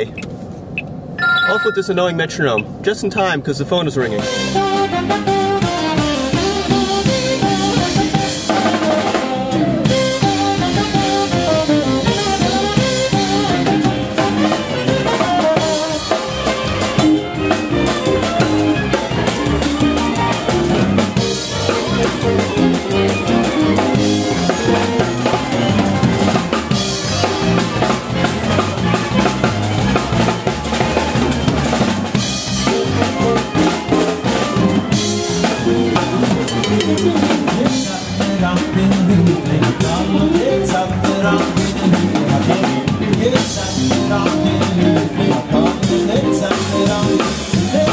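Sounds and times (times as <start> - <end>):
live band playing: 1.2 - 2.6, 4.1 - 47.9
bass line: 4.2 - 47.9.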